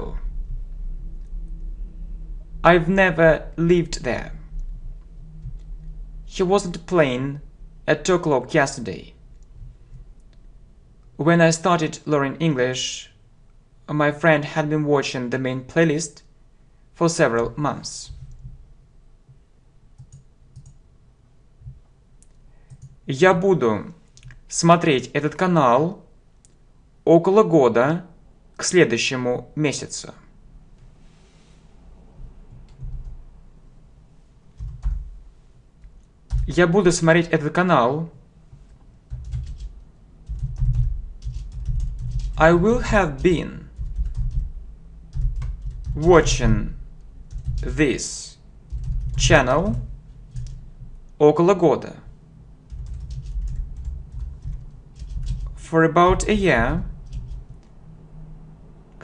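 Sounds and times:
low hum: 0:00.0 - 0:11.2, 0:17.9 - 0:22.3, 0:30.3 - 0:51.2, 0:51.9 - 0:59.0
computer keyboard typing: 0:18.1 - 0:18.6, 0:20.0 - 0:20.8, 0:22.7 - 0:23.0, 0:34.6 - 0:35.1, 0:36.3 - 0:36.6, 0:39.1 - 0:46.4, 0:47.3 - 0:47.8, 0:48.7 - 0:50.7, 0:52.7 - 0:55.6, 0:57.0 - 0:57.5
computer clicks: 0:20.0 - 0:20.8, 0:22.2 - 0:23.0.

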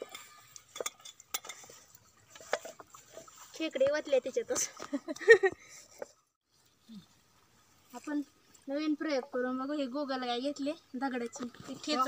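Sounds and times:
metal plates clinking on stones: 0:00.0 - 0:01.7.

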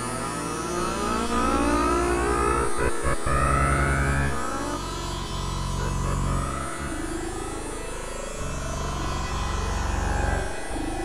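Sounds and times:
low synthesizer drone: 0:00.0 - 0:11.0.

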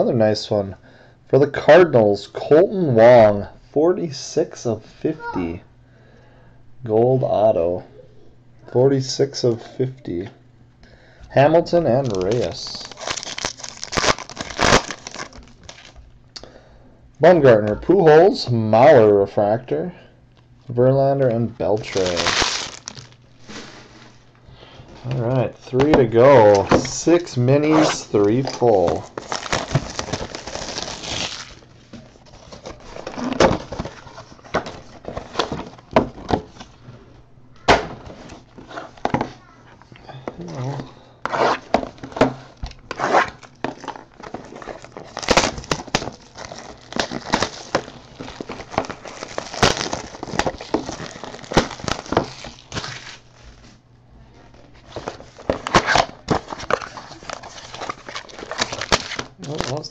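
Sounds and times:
plastic wrap crinkling and tearing: 0:12.0 - 0:16.0, 0:21.8 - 0:23.7, 0:26.3 - 0:35.8, 0:42.8 - 0:53.5, 0:54.6 - 0:59.9
cardboard boxes rustling: 0:21.8 - 0:24.2, 0:27.8 - 0:36.8, 0:40.3 - 0:53.2, 0:54.7 - 0:59.9.

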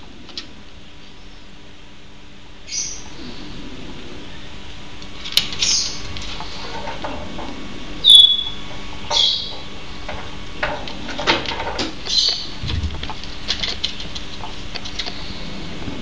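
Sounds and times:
marmosets high-pitched calls: 0:02.7 - 0:03.1, 0:05.6 - 0:06.0, 0:08.0 - 0:09.6, 0:12.1 - 0:12.5.

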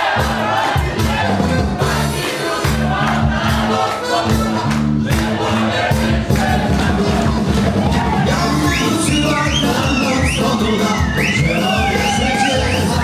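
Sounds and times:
live dance band playing: 0:00.0 - 0:13.0.

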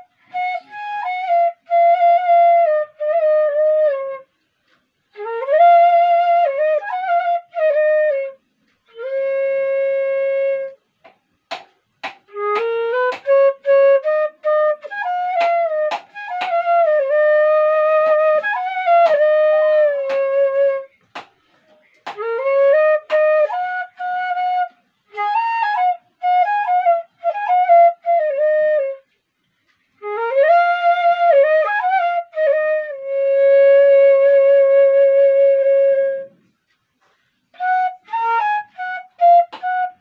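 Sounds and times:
bamboo flute melody: 0:00.0 - 0:40.0.

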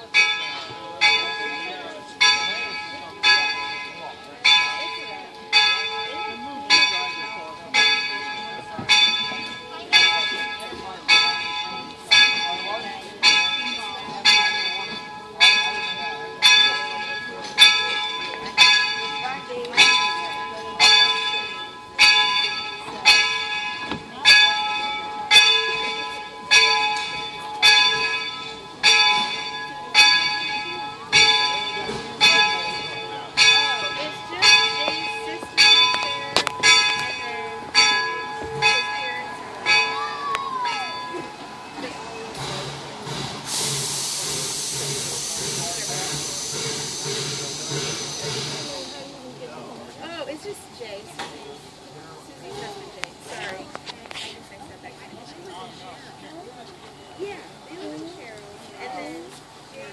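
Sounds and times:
steam locomotive bell ringing: 0:00.0 - 0:53.5.

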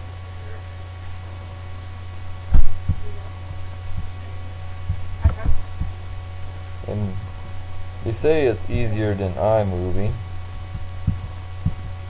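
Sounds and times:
low mains hum: 0:00.0 - 0:12.0
dull low thumps: 0:02.3 - 0:08.9, 0:09.9 - 0:12.0.

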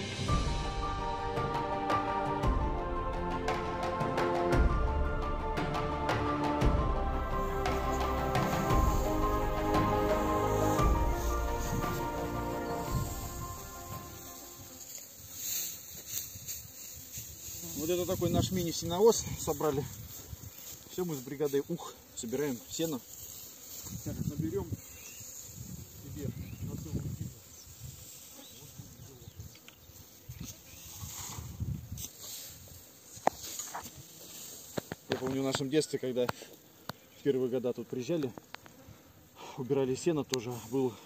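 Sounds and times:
insects chirping: 0:07.1 - 0:41.0
dry hay rustling: 0:07.3 - 0:36.2
wind buffeting microphone: 0:25.6 - 0:27.4.

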